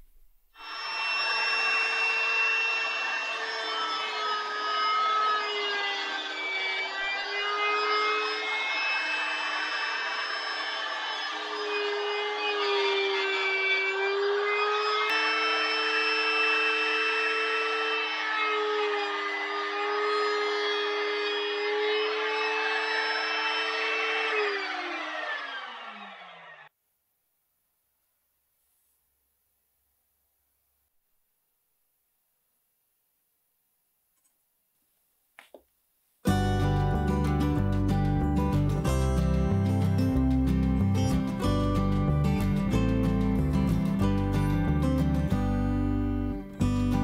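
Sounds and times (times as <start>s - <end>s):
router whining: 0.6s - 26.7s
router winding down: 0.6s - 26.7s.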